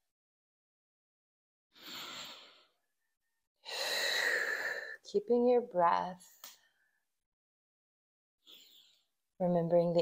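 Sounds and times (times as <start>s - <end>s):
woman breathing: 1.8s - 5.1s.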